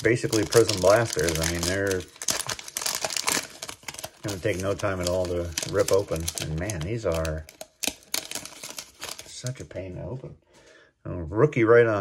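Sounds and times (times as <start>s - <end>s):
plastic wrapper crinkling and tearing: 0.0s - 9.7s.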